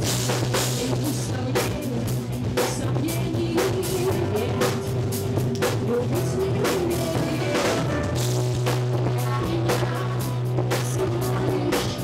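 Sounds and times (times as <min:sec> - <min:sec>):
bass line: 0:00.0 - 0:12.0
drum kit: 0:00.0 - 0:12.0
electric guitar: 0:00.0 - 0:12.0
woman singing into microphone: 0:00.5 - 0:08.2, 0:08.9 - 0:12.0.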